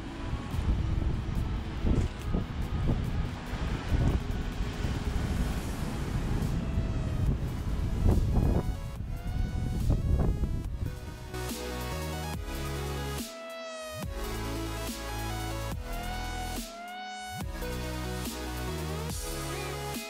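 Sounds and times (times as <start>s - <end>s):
ocean surf washing: 0.0s - 9.7s
wind buffeting microphone: 0.0s - 11.3s
electronic background music: 0.0s - 20.0s.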